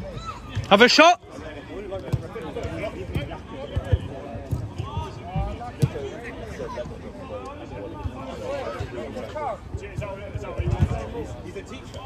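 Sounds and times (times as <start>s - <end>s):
ball strikes and footfalls on turf: 0.1s - 1.0s, 1.9s - 12.0s.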